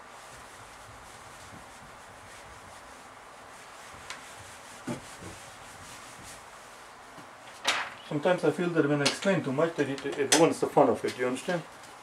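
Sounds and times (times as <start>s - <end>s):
eraser rubbing whiteboard: 0.2s - 6.8s.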